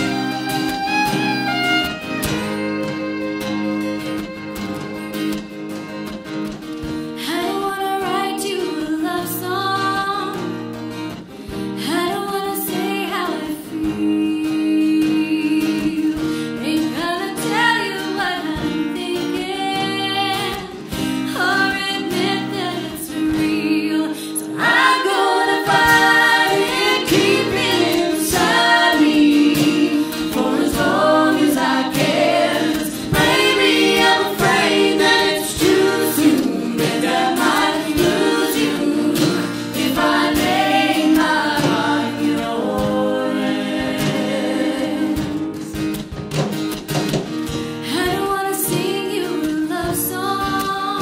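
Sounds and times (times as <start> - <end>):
acoustic guitar: 0.0 - 51.0
woman singing lead: 7.0 - 10.7, 11.5 - 46.0, 47.6 - 51.0
voices singing harmony: 19.4 - 45.8
hand drum beat: 24.6 - 50.8.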